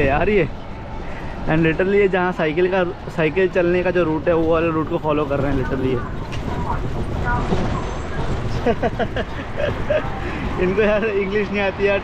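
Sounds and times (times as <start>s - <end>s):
bus engine: 0.0s - 12.0s
faint voices: 0.0s - 12.0s
road noise and traffic: 0.0s - 12.0s.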